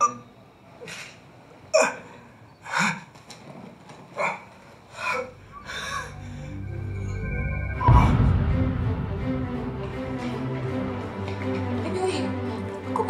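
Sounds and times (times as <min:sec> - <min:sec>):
low music: 0:05.3 - 0:13.0.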